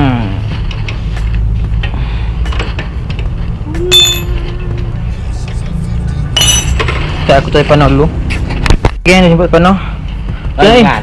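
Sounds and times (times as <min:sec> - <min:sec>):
low hum: 0:00.0 - 0:07.2
metal parts clinking: 0:03.9 - 0:04.4, 0:06.4 - 0:07.1.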